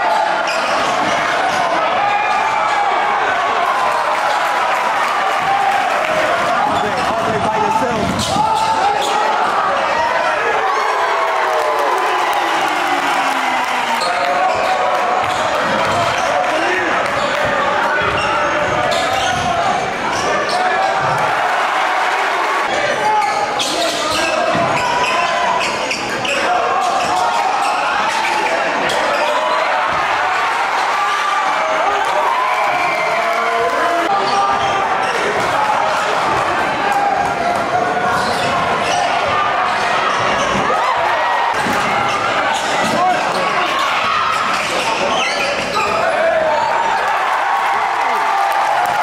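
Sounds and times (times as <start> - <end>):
crowd chatter and shouts: 0.0 - 49.0.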